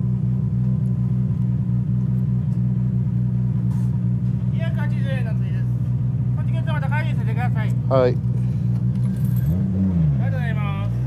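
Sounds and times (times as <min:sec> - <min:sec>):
car engine idling and revving: 0:00.0 - 0:11.0.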